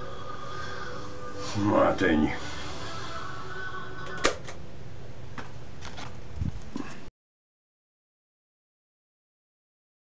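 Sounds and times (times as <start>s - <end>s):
background hum: 0.0s - 7.1s.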